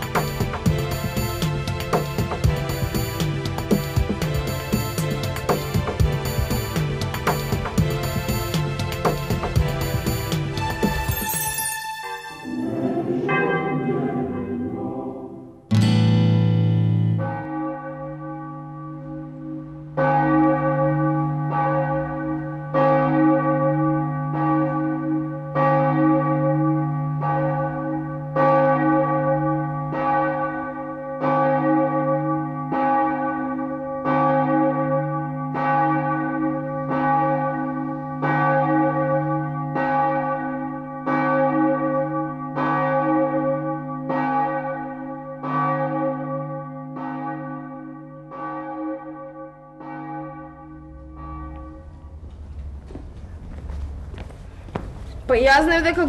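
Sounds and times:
church bell tolling: 0:00.0 - 0:53.4
low hum: 0:12.4 - 0:15.7, 0:50.7 - 0:55.4.

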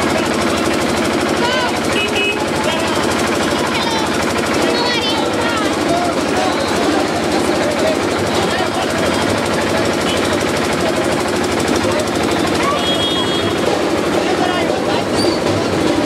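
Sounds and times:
rattling procession drums: 0:00.0 - 0:16.0
crowd shouting: 0:01.3 - 0:10.6.

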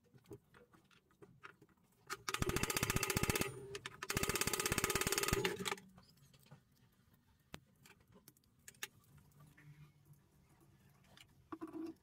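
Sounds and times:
spinning ball bearing clicking and whirring: 0:02.3 - 0:05.8.

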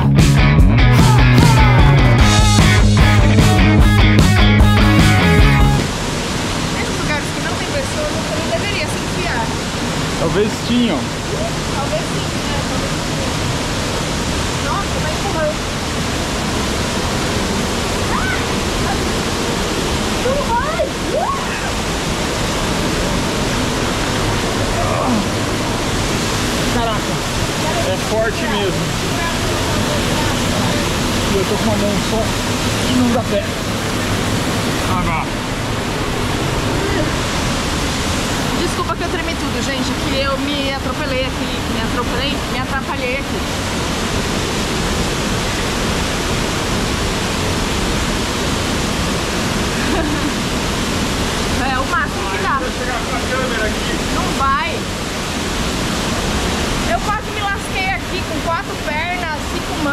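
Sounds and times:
waterfall pouring into pool: 0:05.8 - 0:59.9.

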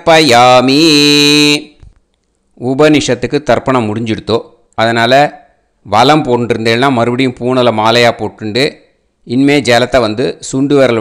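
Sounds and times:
man chanting: 0:00.0 - 0:01.9, 0:02.6 - 0:11.0.

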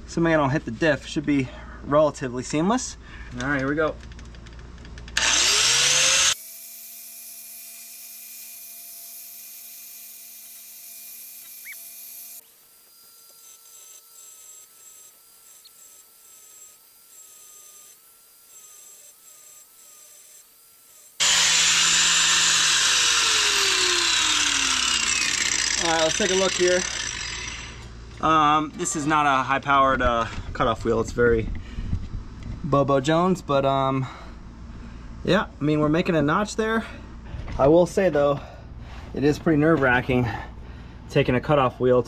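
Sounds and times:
angle grinder grinding metal: 0:05.1 - 0:29.6.

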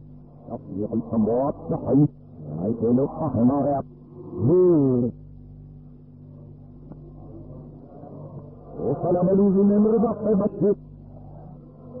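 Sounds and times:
low recording hum: 0:00.0 - 0:12.0.

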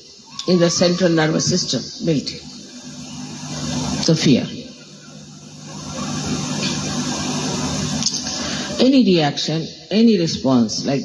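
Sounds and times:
low mechanical hum with hiss: 0:00.0 - 0:11.0.

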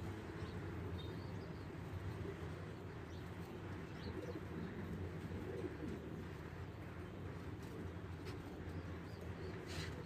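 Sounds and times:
pigeon cooing: 0:04.0 - 0:06.8.

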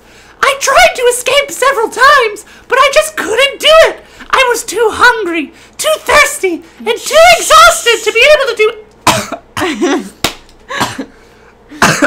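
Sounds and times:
person coughing: 0:09.0 - 0:12.0.

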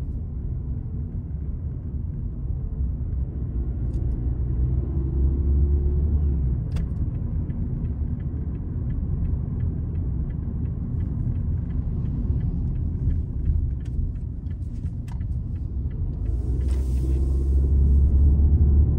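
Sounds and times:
car engine and tyres rumbling: 0:00.0 - 0:18.9
turn signal ticking: 0:06.5 - 0:18.9.

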